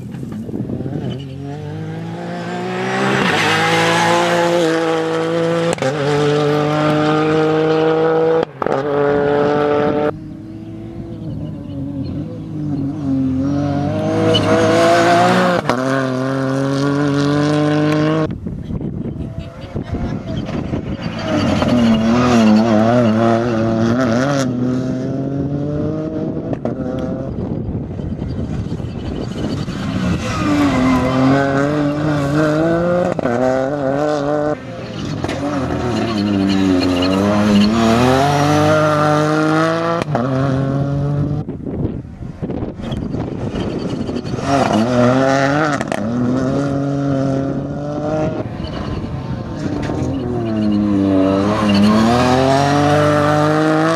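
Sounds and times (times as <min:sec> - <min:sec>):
car engine revving hard: 0:01.5 - 0:11.4, 0:35.2 - 0:41.5, 0:44.1 - 0:53.9.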